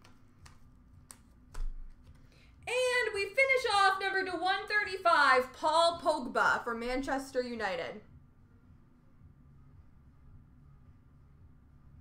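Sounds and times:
trading cards handled: 0.0 - 2.4.

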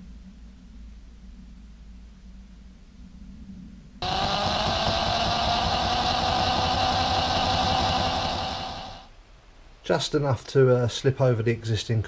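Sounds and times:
power drill boring steel tube: 4.0 - 9.1.

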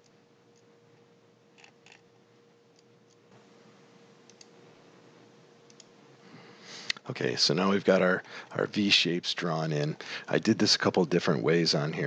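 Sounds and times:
faint steady hum: 0.0 - 12.0
low room hiss: 0.0 - 12.0
computer mouse clicks: 4.3 - 4.5, 5.7 - 5.9.

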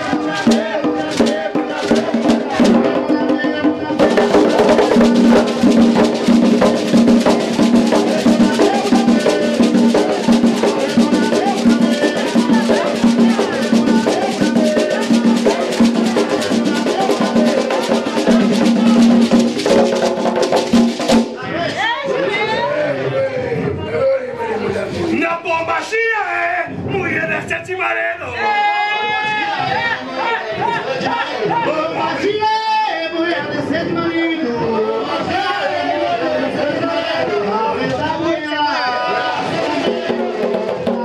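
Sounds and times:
fast dense drumming: 0.0 - 21.4, 39.4 - 41.0.

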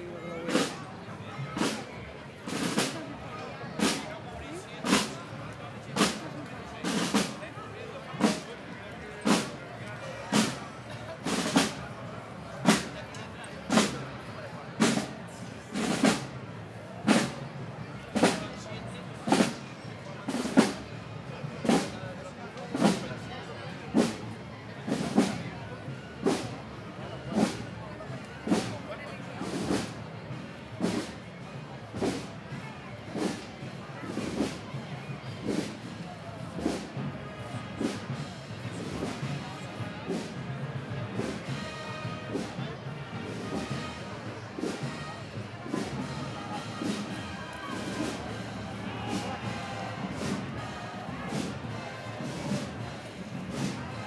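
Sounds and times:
murmur of voices: 0.0 - 54.0
bass drum and cymbal march: 0.5 - 0.8, 1.6 - 1.9, 2.5 - 3.1, 3.8 - 4.1, 4.8 - 5.2, 5.9 - 6.2, 6.8 - 7.4, 8.2 - 8.5, 9.2 - 9.6, 10.3 - 11.8, 12.6 - 13.0, 13.7 - 14.0, 14.8 - 17.4, 18.1 - 18.6, 19.2 - 19.6, 20.3 - 20.9, 21.6 - 22.0, 22.7 - 23.0, 24.0 - 25.3, 26.2 - 26.6, 27.3 - 27.8, 28.4 - 28.8, 29.4 - 31.2, 31.9 - 32.3, 33.2 - 33.5, 34.1 - 34.7, 35.4 - 36.0, 36.6 - 37.1, 37.7 - 39.4, 40.1 - 40.4, 41.2 - 42.6, 43.2 - 53.8.

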